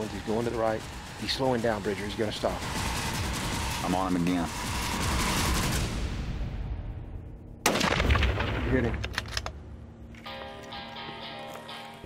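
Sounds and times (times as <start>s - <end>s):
rifle shot with rumble: 7.6s - 9.3s
music: 9.6s - 12.0s.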